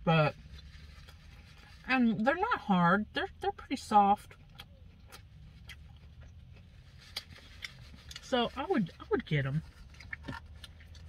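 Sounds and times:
car interior hum: 0:00.0 - 0:11.0.

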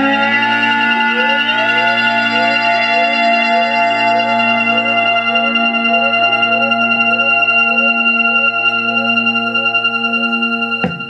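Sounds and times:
synthesizer chord with rising glide: 0:00.0 - 0:11.0.

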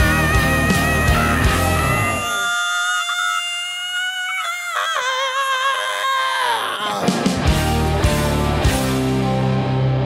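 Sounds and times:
rock band playing: 0:00.0 - 0:02.4, 0:07.0 - 0:10.0
sustained wavering high notes: 0:00.0 - 0:02.5.

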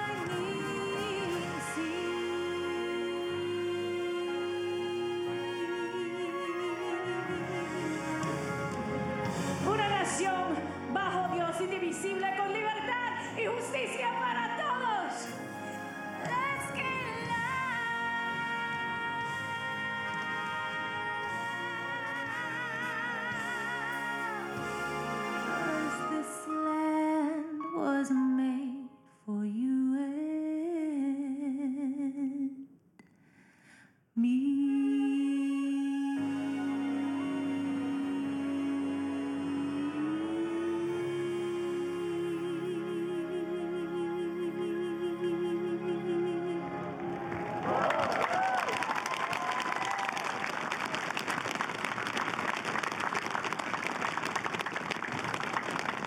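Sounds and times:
woman singing a long note: 0:34.2 - 0:47.6
audience applause: 0:46.9 - 0:56.0.

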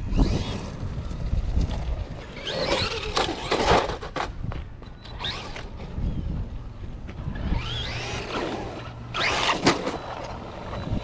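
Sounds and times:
tyre noise on road: 0:00.0 - 0:11.0
electric motor whining: 0:04.9 - 0:11.0.

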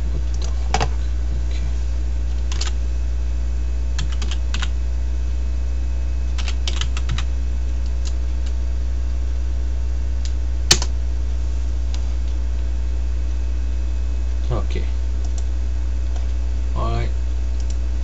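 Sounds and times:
low steady hum: 0:00.0 - 0:18.0
computer keyboard typing: 0:02.4 - 0:02.8, 0:04.0 - 0:04.7, 0:06.4 - 0:07.3.

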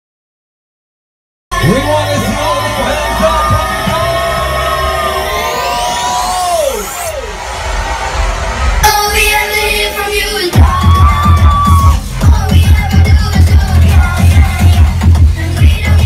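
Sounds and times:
electronic dance music: 0:01.5 - 0:16.0
heavy bass beat: 0:01.5 - 0:16.0.

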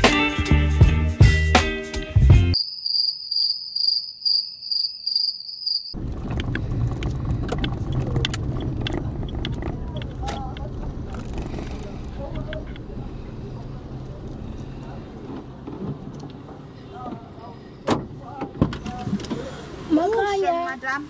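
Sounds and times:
music: 0:00.0 - 0:02.6
crickets chirping: 0:02.6 - 0:06.0
car driving rumble inside cabin: 0:06.0 - 0:20.7.

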